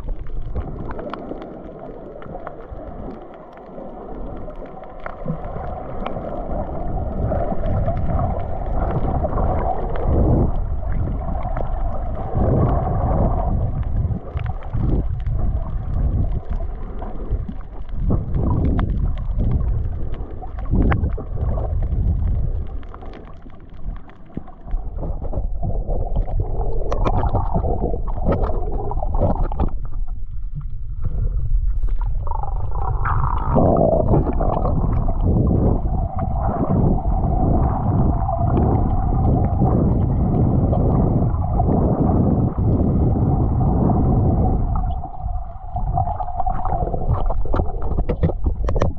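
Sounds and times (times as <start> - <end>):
underwater sloshing and gurgling: 0.0 - 48.9.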